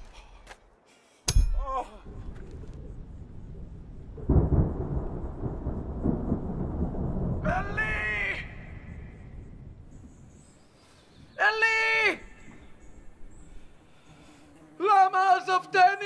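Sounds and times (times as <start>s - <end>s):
thunder rumbling: 2.0s - 10.6s
harsh bird call: 10.3s - 13.5s.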